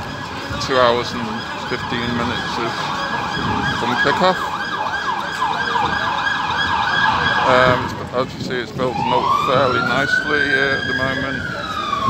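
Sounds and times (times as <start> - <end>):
emergency siren fast yelp: 0.0 - 8.0, 8.7 - 12.0.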